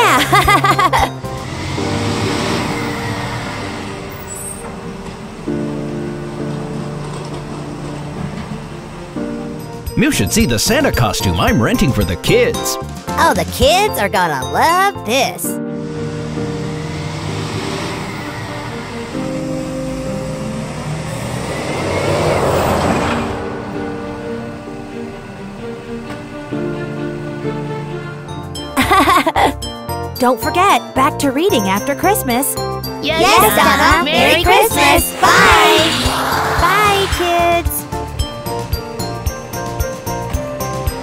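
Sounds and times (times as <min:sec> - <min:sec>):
light background music: 0:00.0 - 0:21.7, 0:22.8 - 0:41.0
car zooming away whoosh: 0:01.2 - 0:09.5, 0:15.6 - 0:27.8, 0:34.6 - 0:38.9
cartoon rushing whoosh: 0:33.4 - 0:38.0.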